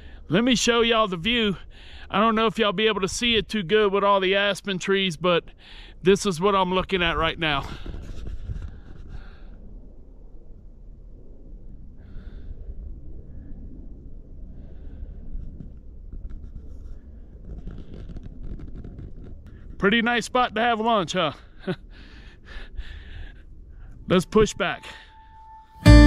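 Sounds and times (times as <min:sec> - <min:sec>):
man breathing: 0:01.6 - 0:02.1, 0:05.5 - 0:06.0, 0:21.4 - 0:24.0.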